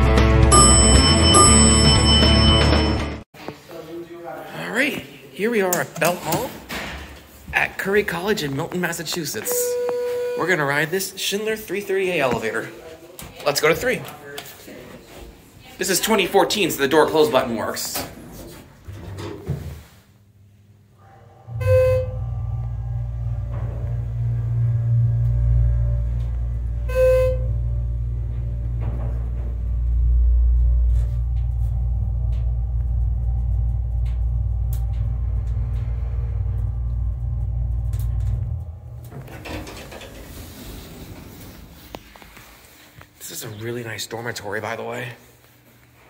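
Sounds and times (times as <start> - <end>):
short electronic beeps: 0.5 - 3.0, 9.6 - 10.4
elevator pump humming: 21.2 - 43.2.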